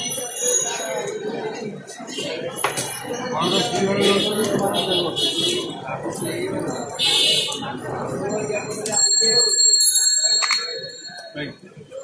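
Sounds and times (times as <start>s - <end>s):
voices: 0.0s - 12.0s
small metal bell ringing: 8.3s - 11.6s.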